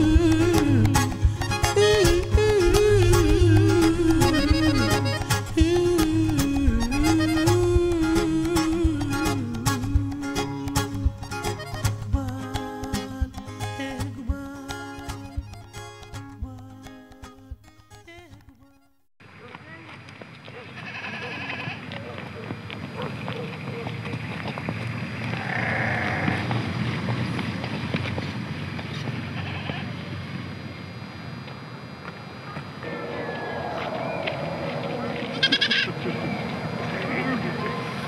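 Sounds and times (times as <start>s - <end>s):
distant voices: 19.3s - 38.0s
goats bleating: 20.7s - 22.0s, 25.4s - 26.5s, 29.3s - 29.9s, 34.9s - 36.2s.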